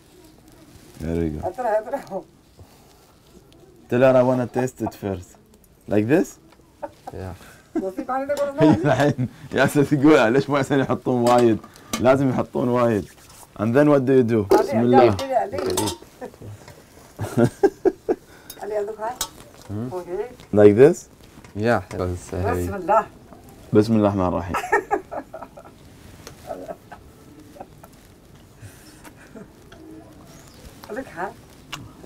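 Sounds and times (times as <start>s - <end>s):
quiet voices: 19.4s - 20.4s, 26.3s - 32.0s.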